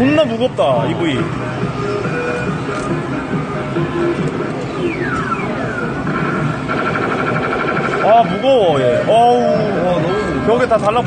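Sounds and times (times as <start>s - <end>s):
arcade game machines din: 4.6s - 9.5s
rapidly pulsing electronic beep: 4.7s - 10.6s.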